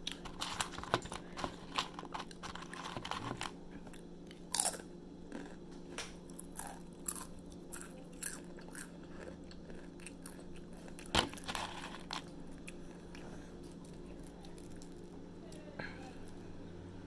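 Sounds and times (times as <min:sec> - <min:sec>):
crunching chips: 0:00.0 - 0:05.6, 0:06.2 - 0:15.2.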